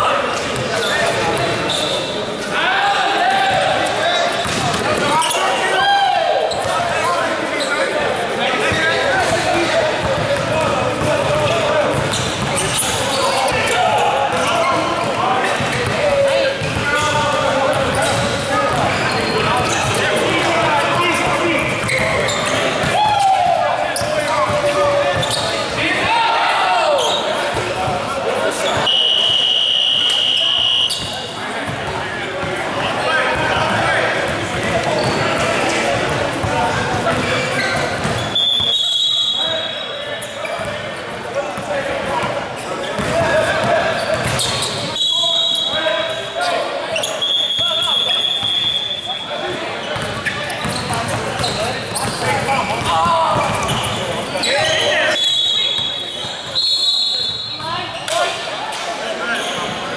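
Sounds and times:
voices calling out echoing: 0.0 - 59.9.

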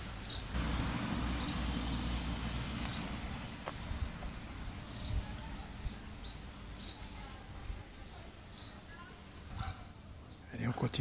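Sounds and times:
small bird chirping: 0.0 - 0.6, 1.3 - 10.6.

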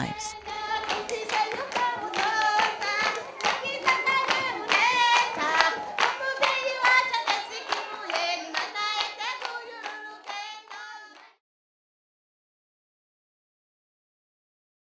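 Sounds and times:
voices singing together: 0.0 - 11.4
rhythmic hand clapping: 0.2 - 11.4.

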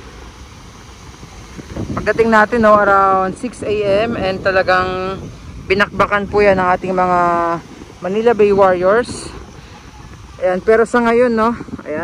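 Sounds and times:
strong wind on microphone: 0.0 - 12.0.

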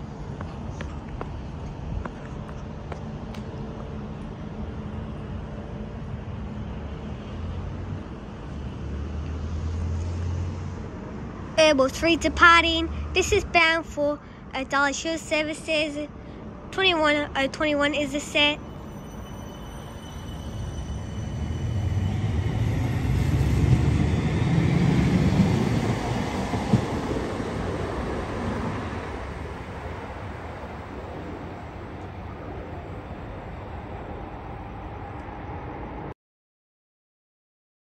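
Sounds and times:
tram running gear hum: 0.0 - 12.4, 16.1 - 36.1
wheel-on-rail noise: 18.6 - 36.1.

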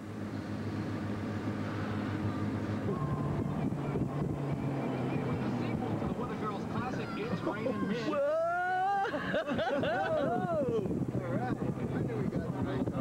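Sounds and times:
vehicle engine and road drone: 0.0 - 13.0.

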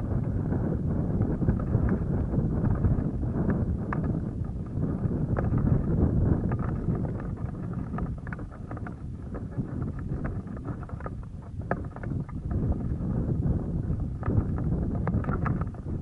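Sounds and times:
wind buffeting microphone: 0.0 - 16.0
light ticks and rustles: 1.2 - 16.0.

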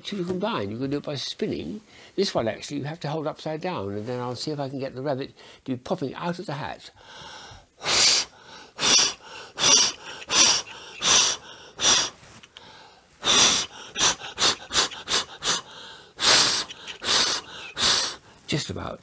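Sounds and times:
man blowing sharp puffs: 7.8 - 18.5.

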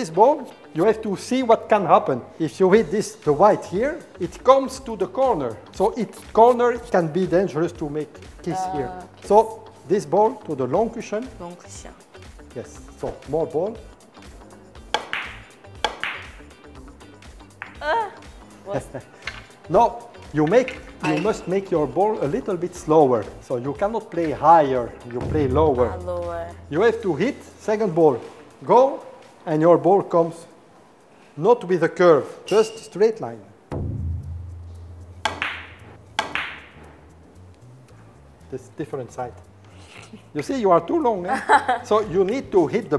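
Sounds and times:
background music: 0.0 - 42.9
billiard balls clicking: 14.9 - 16.4, 35.2 - 36.8.

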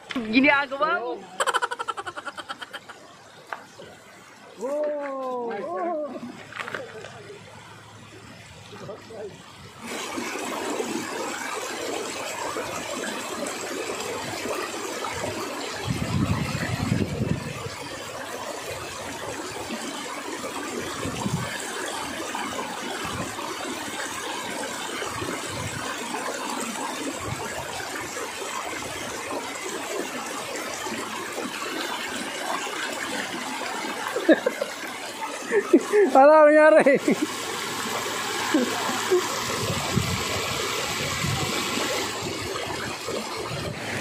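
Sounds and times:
wind buffeting microphone: 15.2 - 17.8, 39.4 - 44.0.

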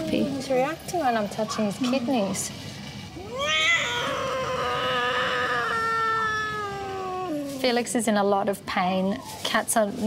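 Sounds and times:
kitten crying in pain: 3.2 - 7.6.

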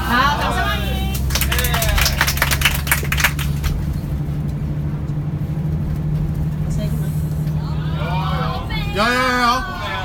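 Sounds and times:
vehicle engine drone: 0.0 - 10.0
people clapping: 0.4 - 3.9.

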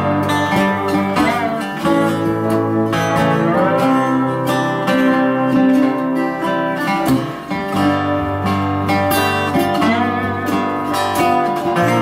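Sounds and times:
acoustic guitar: 0.0 - 12.0
lap steel slide guitar: 0.0 - 12.0.

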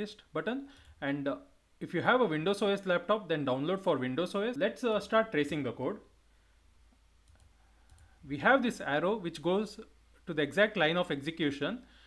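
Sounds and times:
computer mouse clicks: 7.2 - 8.1.

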